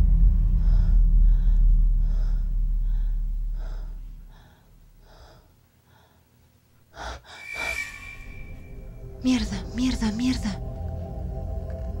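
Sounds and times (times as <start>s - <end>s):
low rumble: 7.2s - 11.4s
held high tone: 7.3s - 9.2s.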